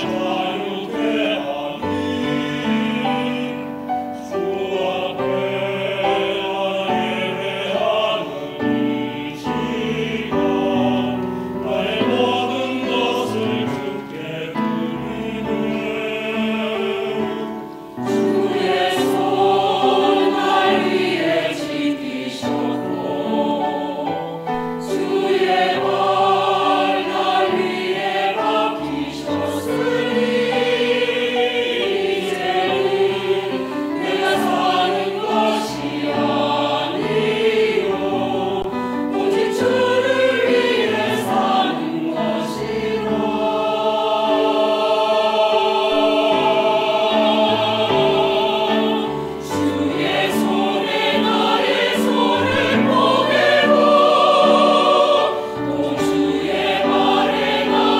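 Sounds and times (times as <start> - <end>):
mixed choir singing a hymn: 0.0 - 57.9.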